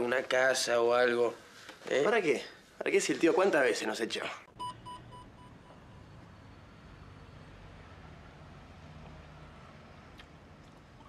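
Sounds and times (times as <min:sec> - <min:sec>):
short electronic beeps: 0:04.6 - 0:05.8.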